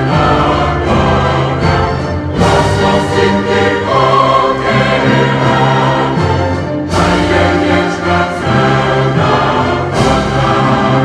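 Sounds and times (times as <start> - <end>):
choir singing held chords: 0.0 - 11.0
orchestral accompaniment: 0.0 - 11.0.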